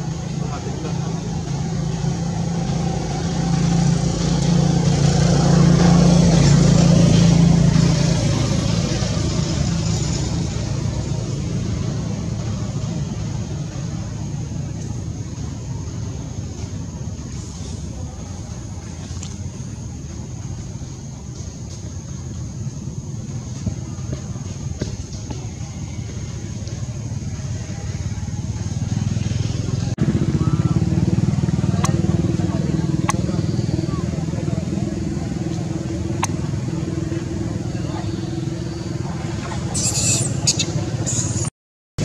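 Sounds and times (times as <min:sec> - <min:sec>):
motor running low rumble: 0:00.0 - 0:39.7.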